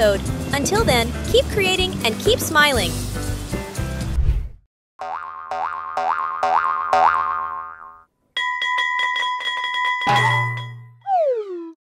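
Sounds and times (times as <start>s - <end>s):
springy cartoon boings: 5.0s - 8.1s, 10.1s - 11.8s
fast bell-like ring: 8.4s - 11.0s.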